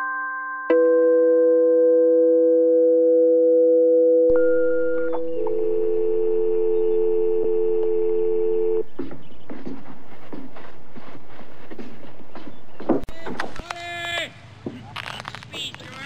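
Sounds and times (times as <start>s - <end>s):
sine-like synth chords: 0.0s - 8.9s.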